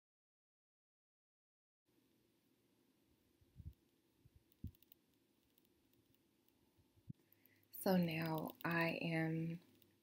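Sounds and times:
faint ticks: 0:03.6 - 0:08.8.

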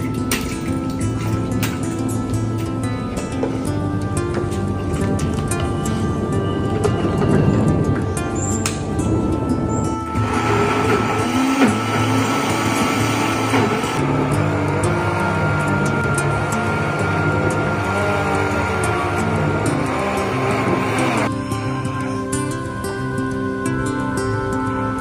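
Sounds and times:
background music: 0:00.0 - 0:25.0
blender motor whine: 0:09.9 - 0:21.3.

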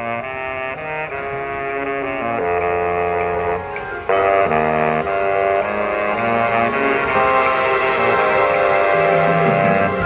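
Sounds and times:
marching band brass chords: 0:00.0 - 0:10.0.

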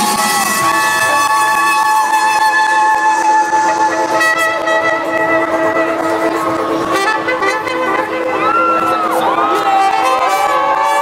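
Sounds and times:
electronic dance music: 0:00.0 - 0:11.0
trumpet playing long notes: 0:00.0 - 0:11.0.

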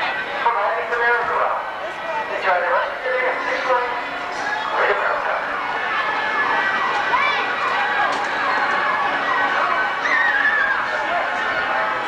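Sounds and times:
voices: 0:00.0 - 0:12.0
siren-like falling wail: 0:04.4 - 0:11.2.

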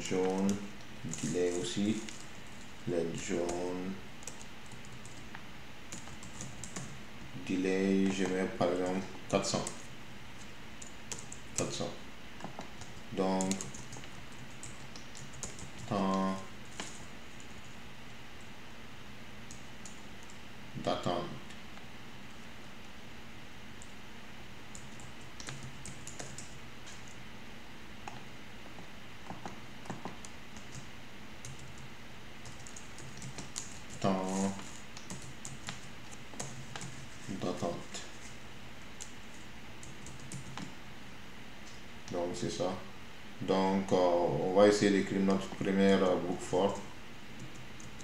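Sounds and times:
computer keyboard typing: 0:00.1 - 0:05.3, 0:05.9 - 0:07.0, 0:07.9 - 0:09.9, 0:10.8 - 0:17.8, 0:24.7 - 0:27.2, 0:29.2 - 0:38.0, 0:39.0 - 0:40.7, 0:46.6 - 0:48.0.

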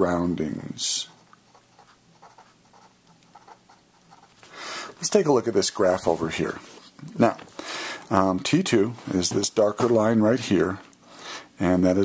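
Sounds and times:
pen scratching on paper: 0:01.1 - 0:04.5.

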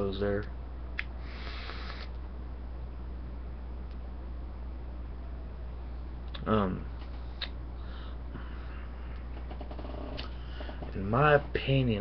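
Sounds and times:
low electrical hum: 0:00.0 - 0:12.0
background hiss: 0:00.9 - 0:02.2.

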